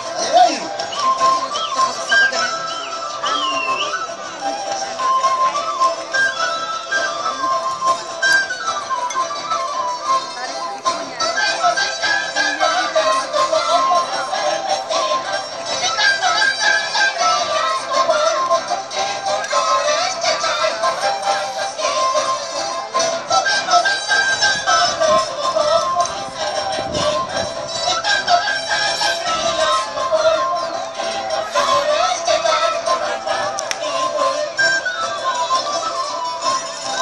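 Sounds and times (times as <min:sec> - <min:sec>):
carnival music instruments: 0:00.0 - 0:37.0
high-pitched sung melody: 0:00.0 - 0:37.0.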